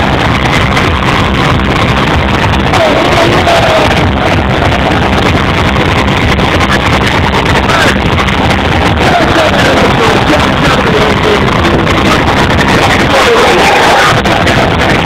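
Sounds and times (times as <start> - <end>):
distorted hardcore dance music: 0.0 - 15.0.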